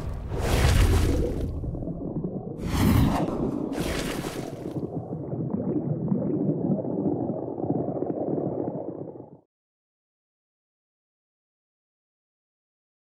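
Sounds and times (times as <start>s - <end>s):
low rumbling underwater bubbling: 0.0s - 9.5s.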